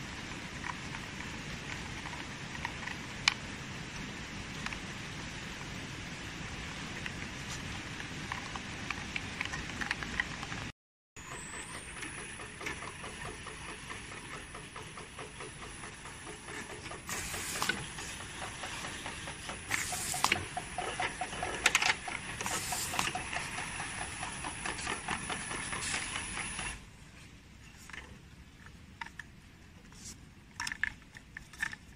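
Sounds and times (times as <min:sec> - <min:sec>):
conveyor and motor noise: 0:00.0 - 0:30.0
short hissing bursts: 0:17.1 - 0:18.1, 0:19.7 - 0:20.4, 0:22.4 - 0:23.2.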